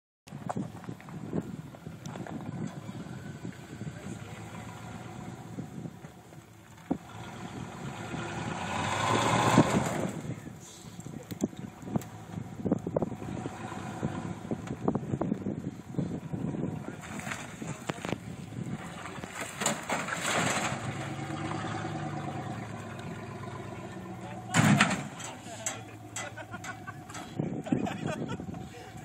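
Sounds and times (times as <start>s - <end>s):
pickup truck engine running: 0.4s - 29.0s.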